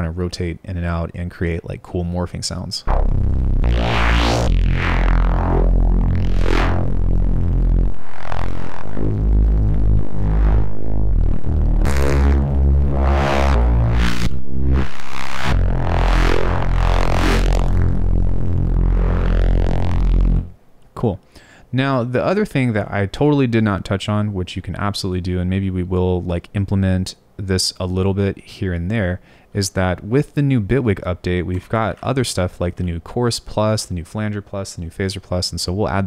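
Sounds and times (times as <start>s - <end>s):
bass synth with filter sweeps: 2.8s - 20.6s.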